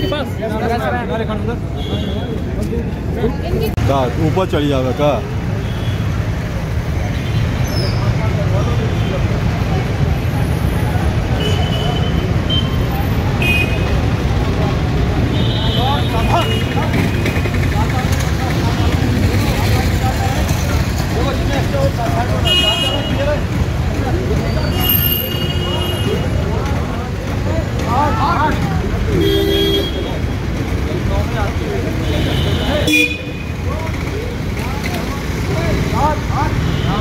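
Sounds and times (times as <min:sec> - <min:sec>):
rumble of passing vehicles: 0:00.0 - 0:37.0
vehicle horn toots: 0:29.2 - 0:30.1.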